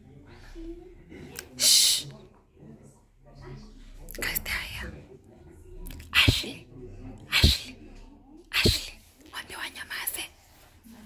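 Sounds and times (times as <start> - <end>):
person whispering: 4.0 - 5.2, 5.8 - 10.7.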